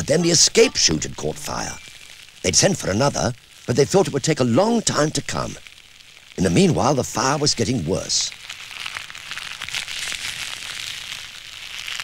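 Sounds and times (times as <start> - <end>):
fire crackling: 0.0 - 12.0.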